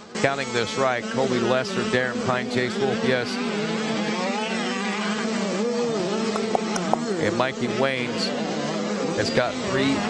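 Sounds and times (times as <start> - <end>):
motocross bike engines buzzing: 0.0 - 10.0.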